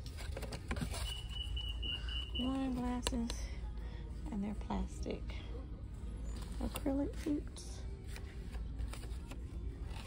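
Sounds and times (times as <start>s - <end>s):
box handling clicks and rustles: 0.0s - 1.8s.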